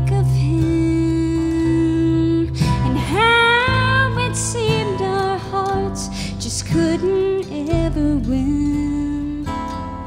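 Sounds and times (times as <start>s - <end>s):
acoustic guitar: 0.0s - 10.0s
mandolin: 0.0s - 10.0s
upright bass: 0.0s - 10.0s
woman singing: 0.0s - 10.0s.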